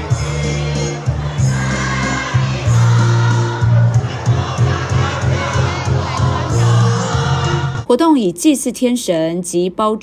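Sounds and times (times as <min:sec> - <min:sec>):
choir singing: 0:00.0 - 0:07.8
musical accompaniment: 0:00.0 - 0:07.8.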